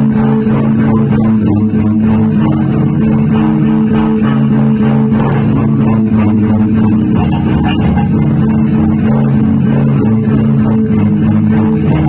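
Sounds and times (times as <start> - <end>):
electric bass guitar groove: 0.0 - 12.0.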